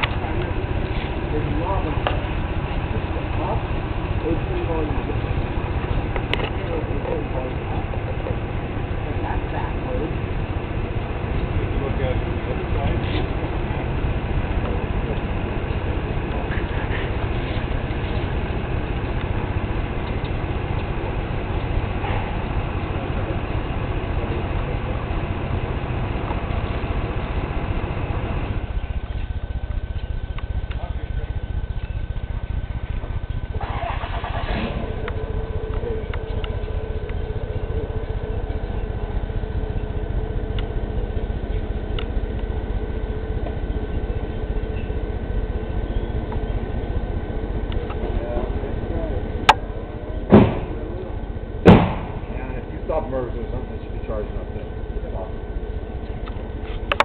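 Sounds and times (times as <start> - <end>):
car engine rumbling: 0.0 - 57.0
steady hum tone: 0.0 - 57.0.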